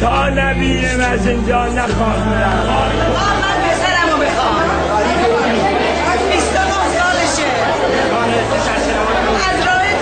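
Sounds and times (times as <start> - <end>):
crowd chatter: 0.0 - 10.0
woman speaking into a microphone: 6.0 - 7.7, 9.3 - 10.0.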